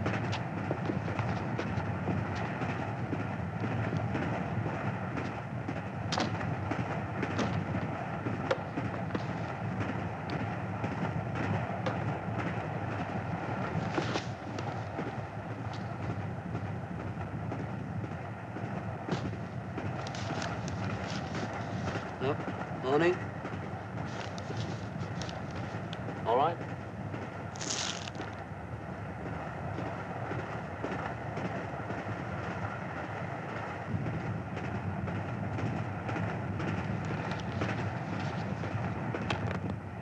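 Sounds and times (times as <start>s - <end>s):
train rumbling: 0.0s - 40.0s.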